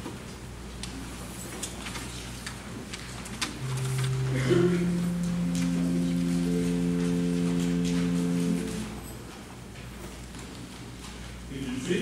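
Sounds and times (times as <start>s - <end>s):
held musical chord: 3.6s - 9.0s.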